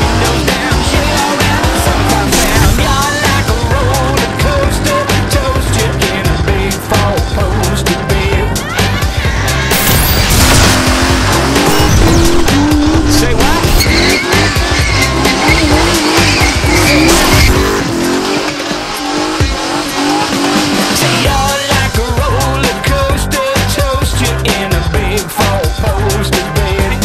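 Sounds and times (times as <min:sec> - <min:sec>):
car tyres squealing: 0:00.0 - 0:03.6, 0:08.6 - 0:21.7
engine revving: 0:00.0 - 0:08.1, 0:09.4 - 0:26.9
music with a steady beat: 0:00.0 - 0:27.0.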